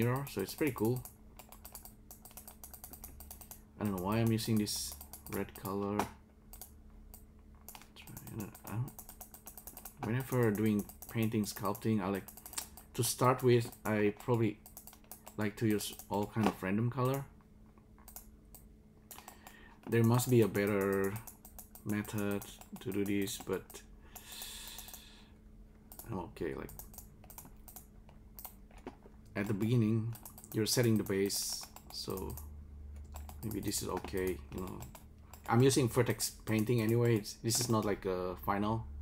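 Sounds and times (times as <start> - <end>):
computer keyboard clicking: 0.0 - 17.2, 18.0 - 25.0, 25.9 - 35.8, 36.5 - 37.9.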